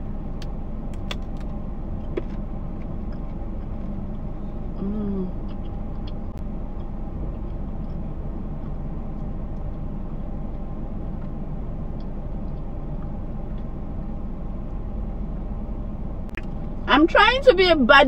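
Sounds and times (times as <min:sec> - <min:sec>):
car cabin low rumble: 0:00.0 - 0:18.0
faint even hum: 0:00.0 - 0:18.0.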